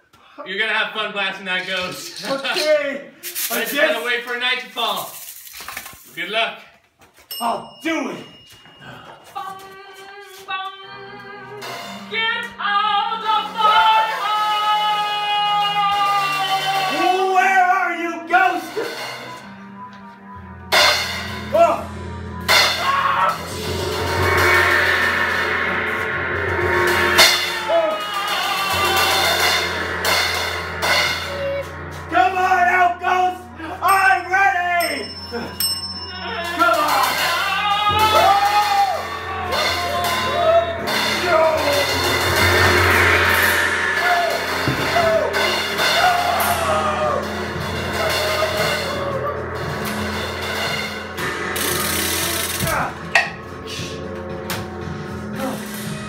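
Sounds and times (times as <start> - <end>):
person singing: 8.8 - 17.8, 26.9 - 30.2, 30.8 - 49.6
background music: 8.8 - 56.0.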